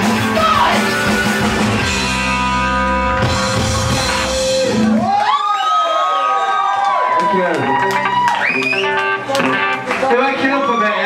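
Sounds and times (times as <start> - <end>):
rock song: 0.0 - 5.2, 7.8 - 10.9
crowd cheering and whooping: 4.0 - 11.0.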